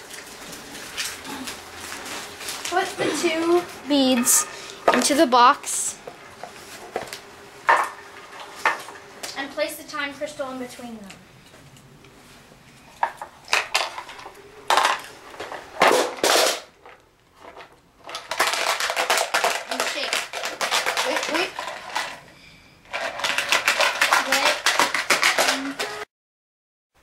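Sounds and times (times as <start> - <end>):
beads rattling in a shaken box: 18.1 - 22.1, 22.9 - 25.9.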